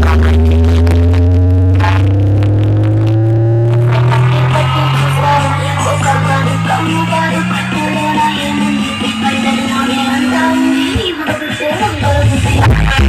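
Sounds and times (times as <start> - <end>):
rising bass sweep: 0.0 - 11.0
loud electronic music: 0.0 - 13.0.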